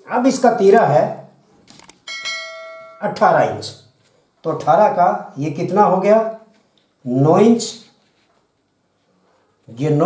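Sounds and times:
bright bell ding: 2.0s - 3.3s.

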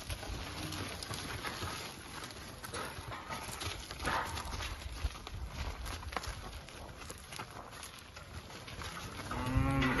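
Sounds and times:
hooves shuffling on gravel: 0.0s - 10.0s
cow mooing: 9.2s - 10.0s.

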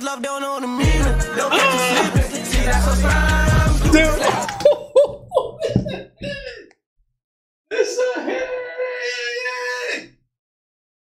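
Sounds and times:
high drawn-out vocal ohhh: 0.8s - 4.6s.

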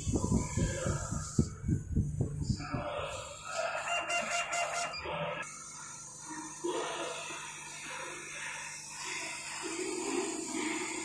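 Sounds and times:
rooster crowing: 3.4s - 5.4s.

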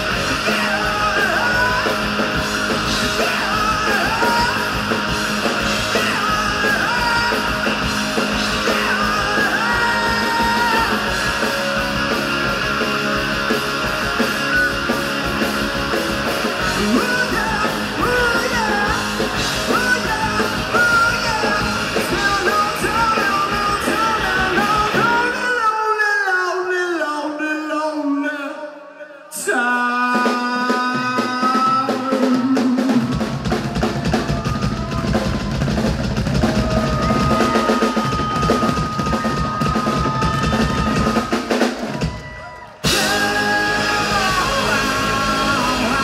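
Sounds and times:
hard-driven drum kit: 0.0s - 25.5s, 29.9s - 46.0s
rock band playing: 0.0s - 26.0s, 29.7s - 46.0s
lead singer singing: 0.0s - 35.6s, 36.5s - 46.0s.

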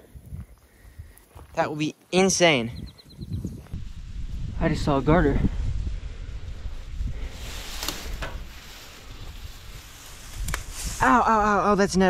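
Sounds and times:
wind rumble on microphone: 0.0s - 1.2s, 2.7s - 12.0s
plants rustling: 5.6s - 11.8s
sharp snaps: 10.3s - 10.8s.

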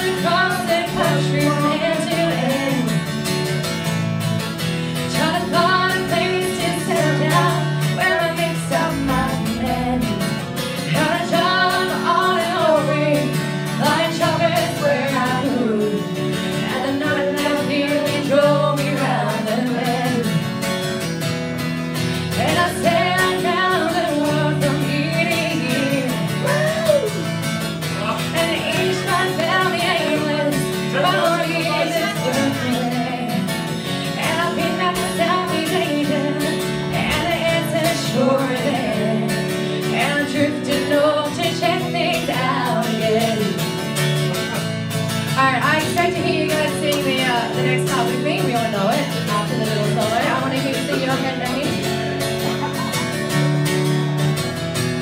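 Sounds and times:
woman singing country song: 0.0s - 54.5s
guitar accompaniment: 0.0s - 55.0s.

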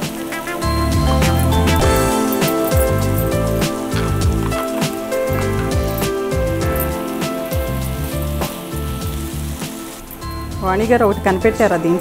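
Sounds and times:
background music with bass line: 0.0s - 11.7s
food sizzling in a frying pan: 0.0s - 12.0s
woman speaking: 10.6s - 12.0s.

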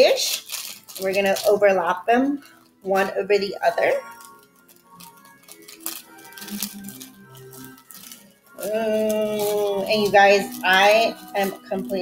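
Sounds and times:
candy packets crackling: 0.0s - 12.0s
plastic bag handled: 0.0s - 12.0s
quiet background music: 0.0s - 12.0s.

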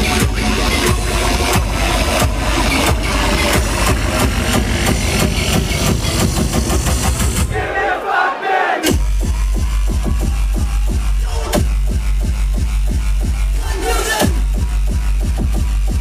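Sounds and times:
distorted kick drum pounding: 0.0s - 7.5s, 8.8s - 16.0s
crowd: 0.0s - 16.0s
industrial hardcore music: 0.0s - 16.0s.

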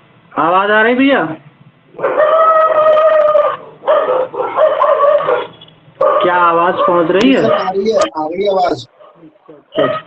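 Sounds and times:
animal long drawn-out calls: 2.0s - 5.5s.

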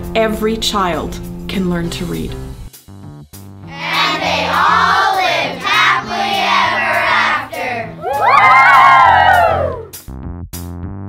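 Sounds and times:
background music: 0.0s - 10.8s
children shouting in unison: 5.5s - 9.9s
children cheering: 5.6s - 10.0s.

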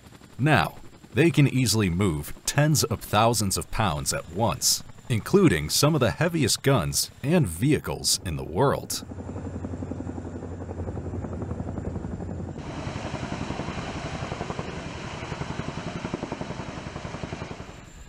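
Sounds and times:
helicopter rotor blades beating: 0.0s - 18.0s.

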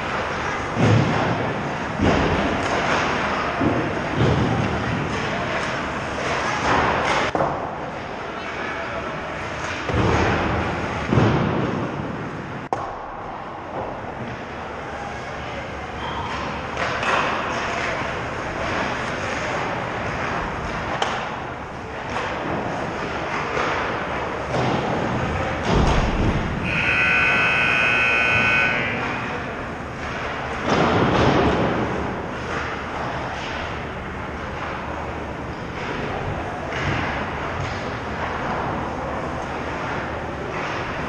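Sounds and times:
distant voices: 13.3s - 41.0s
sticks and pucks clattering: 16.3s - 25.7s.

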